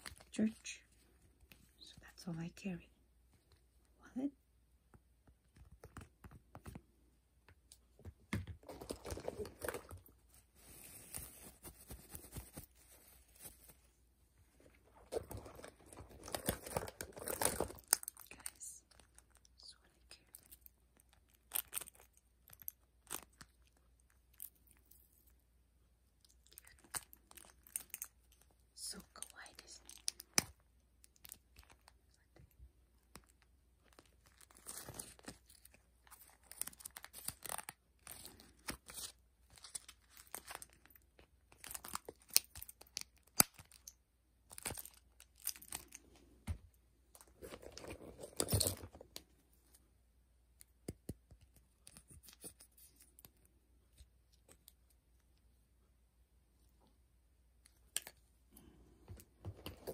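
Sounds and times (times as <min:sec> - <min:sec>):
crinkling and rustling pages: 0:00.0 - 0:01.9, 0:05.2 - 0:25.4, 0:29.2 - 0:49.9, 0:57.7 - 0:59.9.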